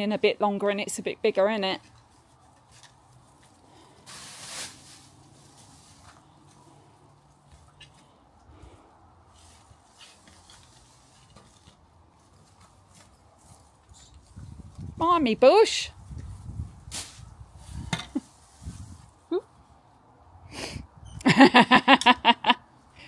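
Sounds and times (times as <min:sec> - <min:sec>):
soil and leaves rustling: 0:00.0 - 0:20.1
garden fork scraping: 0:01.8 - 0:06.8, 0:09.3 - 0:14.4.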